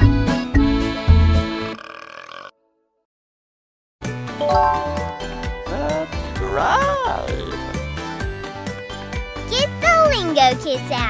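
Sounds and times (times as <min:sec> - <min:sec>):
upbeat children's song: 0:04.4 - 0:05.7.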